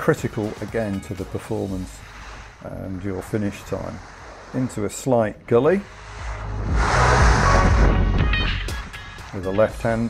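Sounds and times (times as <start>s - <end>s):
skis scraping on snow: 0.0s - 8.2s
background music: 0.0s - 10.0s.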